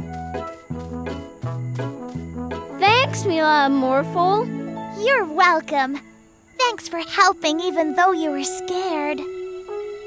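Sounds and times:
background music with held notes: 0.0 - 6.5, 7.3 - 10.0.

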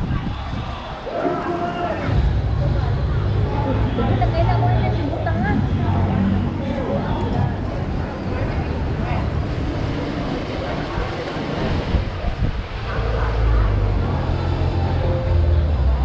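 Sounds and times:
scattered voices: 0.0 - 16.0
steady low rumble: 0.0 - 16.0.

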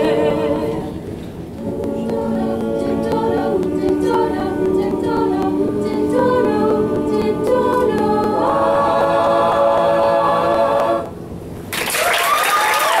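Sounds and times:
a cappella group singing: 0.0 - 11.2
audience applause: 11.7 - 13.0
audience whooping: 11.7 - 13.0.

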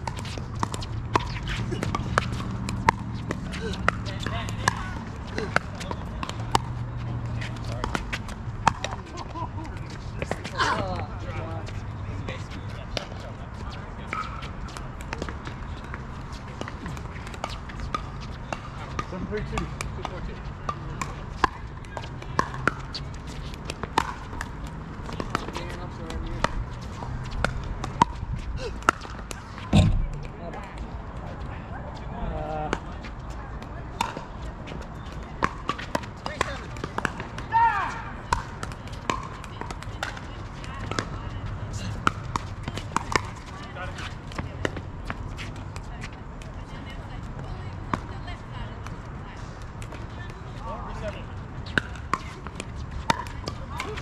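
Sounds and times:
loud thump: 29.7 - 30.4
low outdoor rumble: 29.7 - 31.6.

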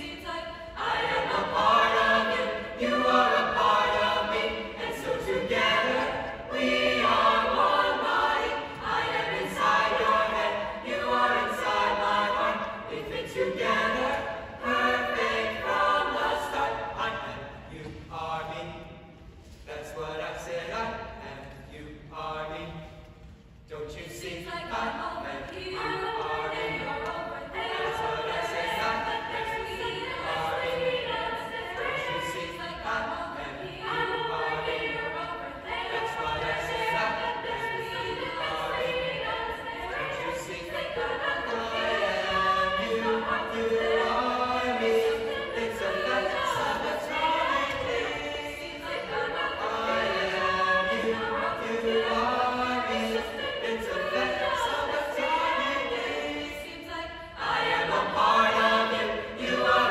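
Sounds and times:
choir singing: 0.0 - 22.9, 23.7 - 59.9.

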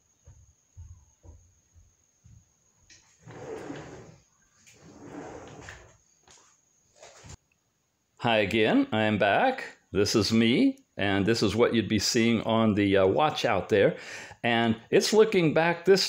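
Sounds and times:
rustling: 3.0 - 7.4.

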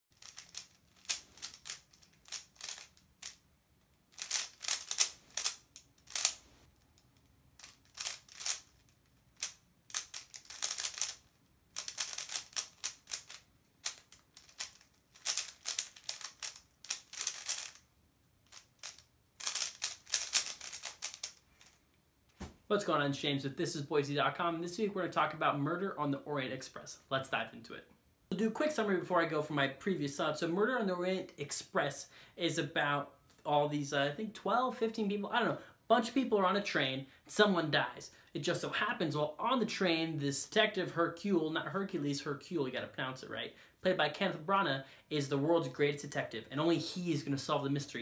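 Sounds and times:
puzzle cube clicking: 0.2 - 3.4, 4.1 - 6.4, 7.0 - 21.8.

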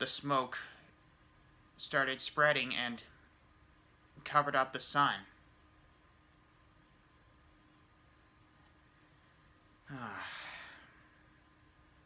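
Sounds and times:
man sighing: 9.9 - 11.0.

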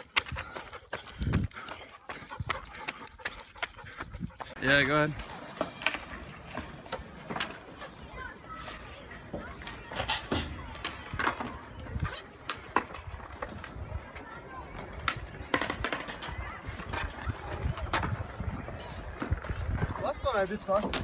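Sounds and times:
faint voices: 0.0 - 21.0.

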